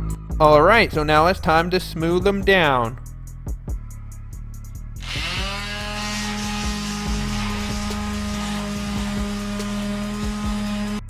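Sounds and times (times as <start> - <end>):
electric sander humming: 5.0 - 11.0.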